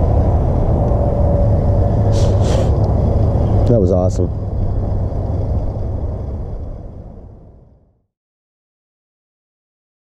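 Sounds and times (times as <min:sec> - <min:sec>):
low outdoor rumble: 0:00.0 - 0:08.1.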